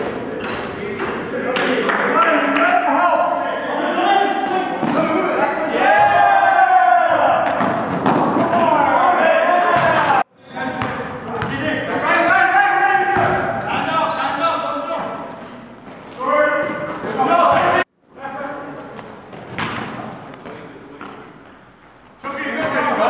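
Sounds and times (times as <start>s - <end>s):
players' voices: 0.0s - 23.0s
basketball bouncing on court floor: 7.4s - 8.6s, 10.7s - 11.6s, 13.1s - 13.7s, 19.3s - 21.2s.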